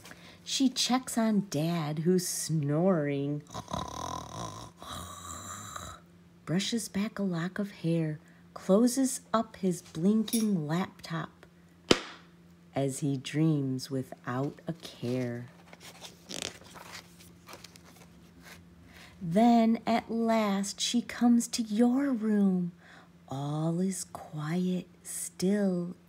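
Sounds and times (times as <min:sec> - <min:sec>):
person imitating snoring: 0:03.4 - 0:06.0
faint paper rustling: 0:14.4 - 0:18.7
paper page turning: 0:14.9 - 0:18.6.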